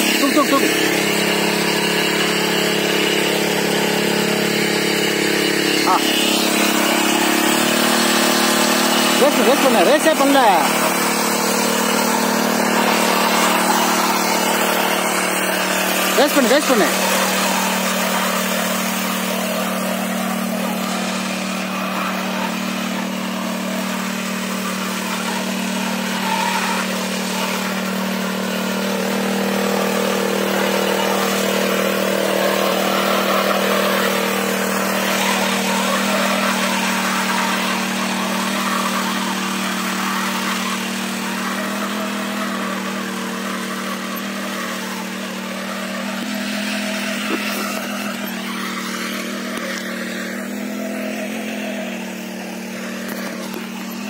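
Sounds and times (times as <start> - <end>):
mini weeder engine drone: 0.0 - 54.0.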